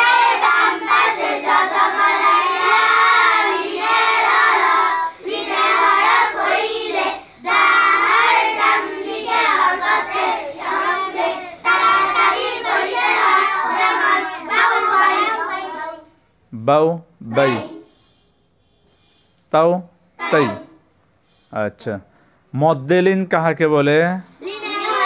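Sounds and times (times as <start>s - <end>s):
children chanting in unison: 0.0s - 16.2s, 17.3s - 17.9s, 20.2s - 20.8s, 24.4s - 25.0s.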